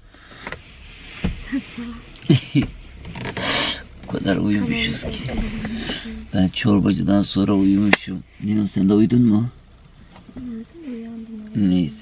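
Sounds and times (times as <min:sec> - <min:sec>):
rubbing and rustling handling noise: 0:00.3 - 0:06.4, 0:07.0 - 0:08.8.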